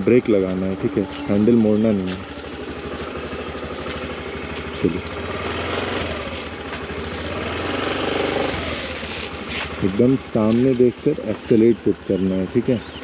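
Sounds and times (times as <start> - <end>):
scooter engine running: 0.0 - 13.0.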